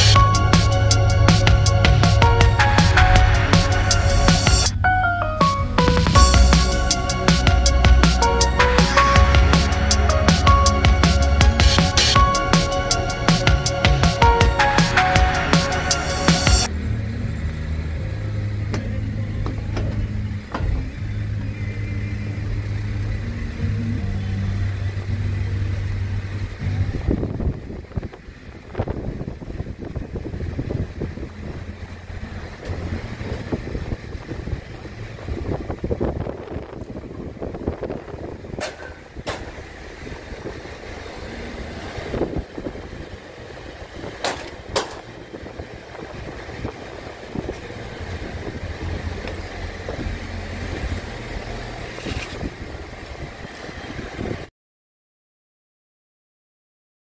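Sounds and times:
car driving rumble: 0.0s - 54.4s.

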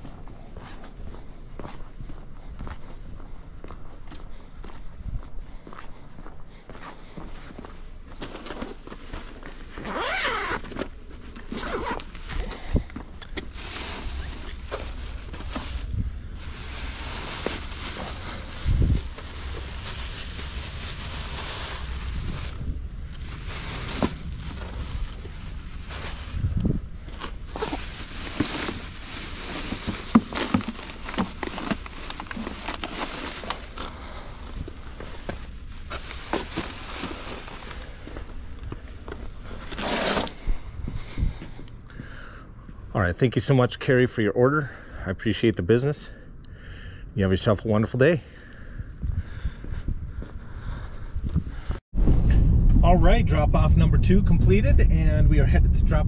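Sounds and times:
footsteps on concrete: 0.0s - 9.6s, 49.6s - 50.4s
groceries rustling: 8.2s - 40.3s
bag being unzipped: 9.8s - 10.7s, 11.5s - 12.1s, 27.5s - 33.9s, 39.7s - 40.4s.

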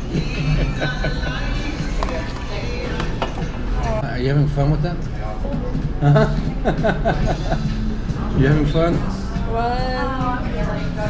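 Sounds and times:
voices of diners: 0.0s - 11.0s.

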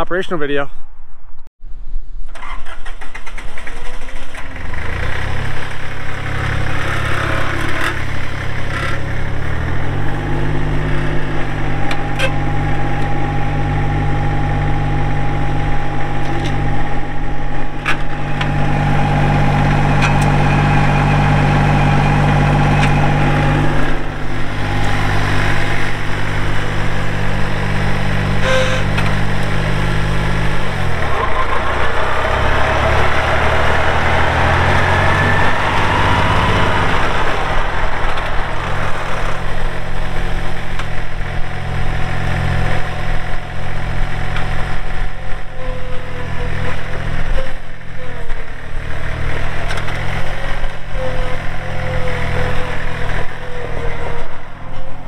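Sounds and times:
diesel engine starting and revving: 2.2s - 55.0s
thin steady whine: 10.9s - 31.1s.

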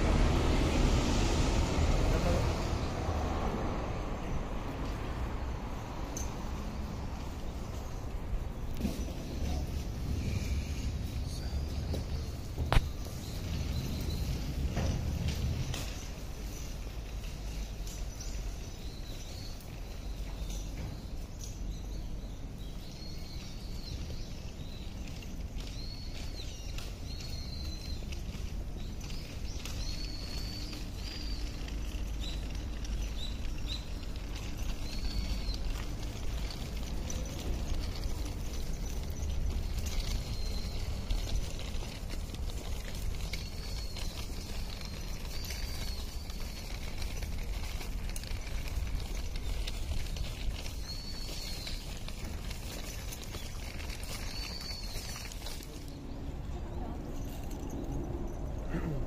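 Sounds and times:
wind rumble on microphone: 0.0s - 58.6s
footsteps crunching on gravel: 22.9s - 56.0s.

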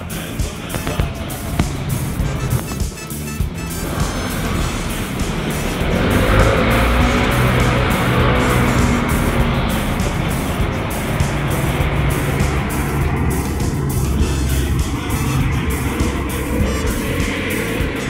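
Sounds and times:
background music: 0.0s - 18.0s
motor vehicle passing: 0.5s - 18.0s.

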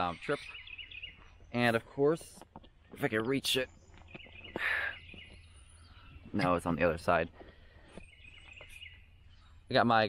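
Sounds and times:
faint birdsong: 0.0s - 10.0s.

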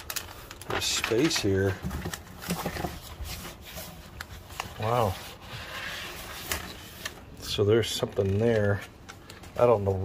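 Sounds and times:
light clicks and crinkles: 0.0s - 10.0s
vinyl sheet and paper rustling: 0.0s - 10.0s.

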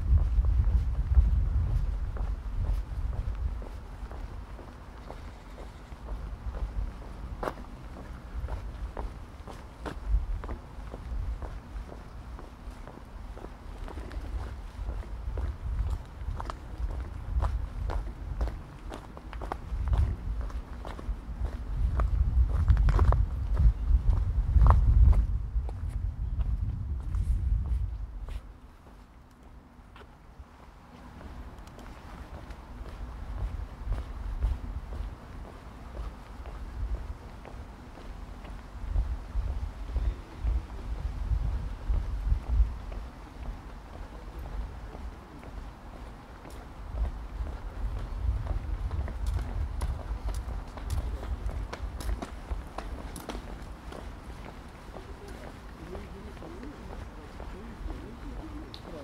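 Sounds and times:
footsteps on cobblestones: 0.0s - 59.0s.

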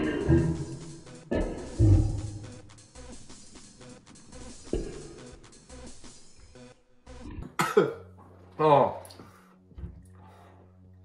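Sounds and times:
background music: 0.0s - 11.0s
man coughing and spluttering: 7.3s - 8.1s.

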